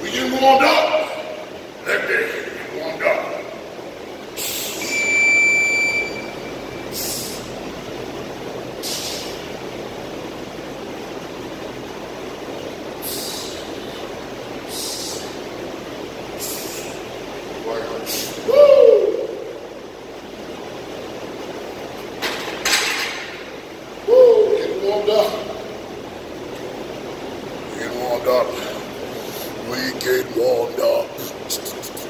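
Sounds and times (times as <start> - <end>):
steady background hum: 0.0 - 32.0
man's short hissing breaths: 6.9 - 7.5, 8.8 - 9.4, 13.0 - 13.7, 14.7 - 15.4, 16.4 - 17.0.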